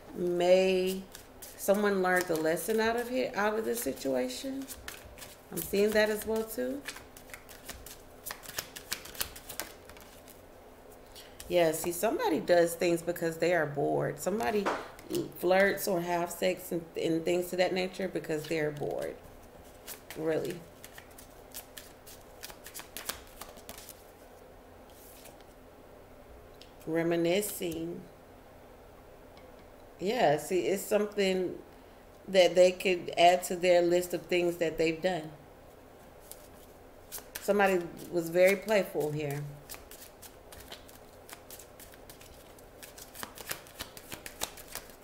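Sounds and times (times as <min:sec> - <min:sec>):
cards being shuffled: 0:00.9 - 0:10.4, 0:18.4 - 0:24.1, 0:24.9 - 0:25.5, 0:36.2 - 0:45.0.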